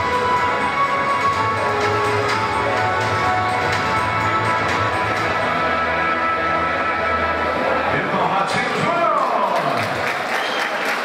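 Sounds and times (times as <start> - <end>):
audience applauding: 8.7 - 11.0.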